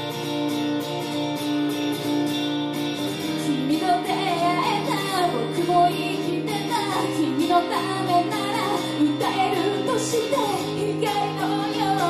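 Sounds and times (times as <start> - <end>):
acoustic guitar strumming: 0.0 - 12.0
woman singing: 3.2 - 12.0.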